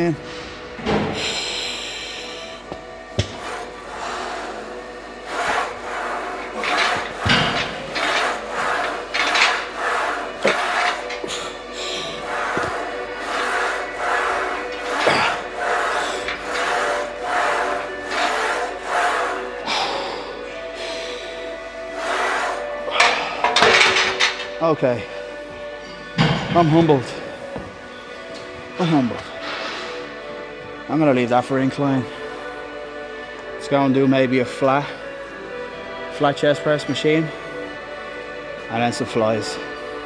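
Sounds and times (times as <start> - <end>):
background music: 0.0 - 40.0
hard rhythmic breathing: 0.2 - 25.4.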